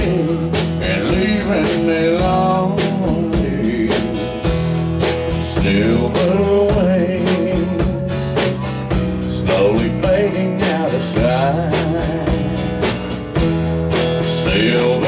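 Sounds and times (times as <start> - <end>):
man singing through pa: 0.0 - 4.4, 5.3 - 8.6, 9.2 - 12.8, 14.1 - 15.0
drum kit beat: 0.0 - 15.0
strummed acoustic guitar: 0.0 - 15.0.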